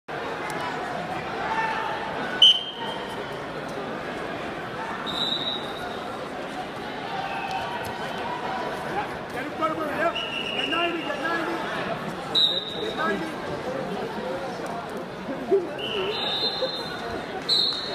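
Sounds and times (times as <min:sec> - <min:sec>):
voices echoing in a hall: 0:00.2 - 0:17.9
referee whistle: 0:02.4 - 0:03.0, 0:05.0 - 0:06.0, 0:10.1 - 0:11.0, 0:12.3 - 0:13.1, 0:15.8 - 0:17.9.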